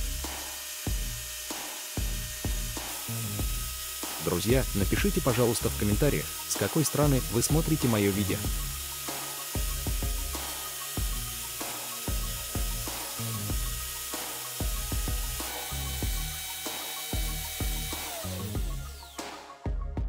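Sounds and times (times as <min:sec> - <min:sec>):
background music with bass beat: 0:00.0 - 0:20.0.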